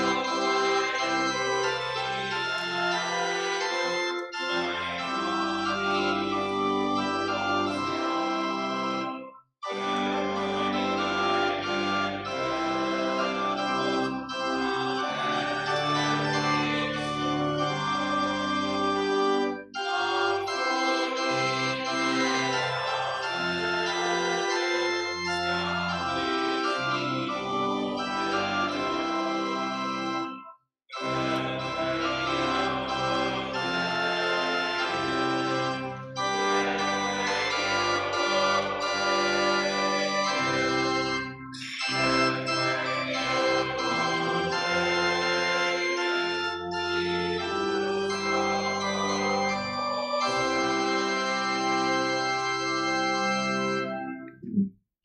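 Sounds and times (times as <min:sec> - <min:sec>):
organ playing hymn chords: 0:00.0 - 0:54.6.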